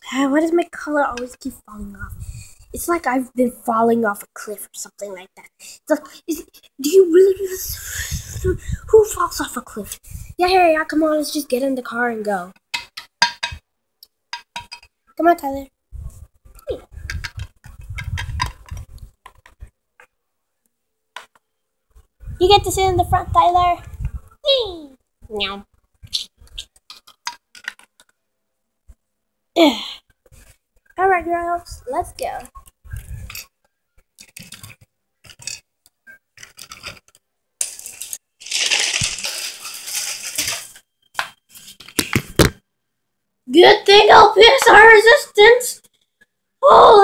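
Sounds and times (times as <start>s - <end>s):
plastic toys clicking and knocking: 12.6s - 15.0s, 17.0s - 20.1s, 26.6s - 28.2s, 32.4s - 42.6s
plastic toy clicks and knocks: 26.8s - 28.2s
toy car rattling: 36.4s - 40.8s.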